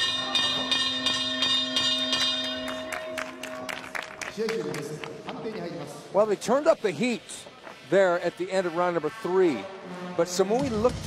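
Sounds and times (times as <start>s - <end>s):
ring bell struck repeatedly: 0.0s - 3.7s.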